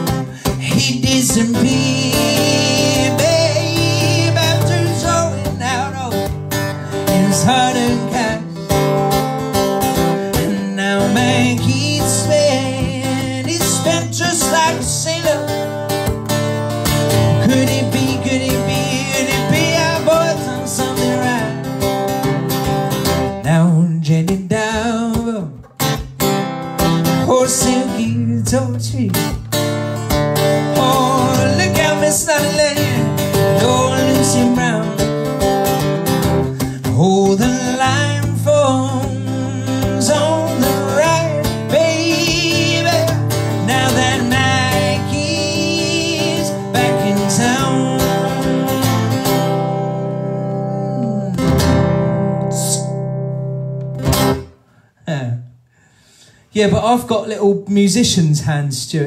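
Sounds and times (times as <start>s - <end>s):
man singing: 0.0s - 26.0s, 27.0s - 53.1s, 55.0s - 55.5s, 56.5s - 59.0s
acoustic guitar strumming: 0.0s - 54.9s.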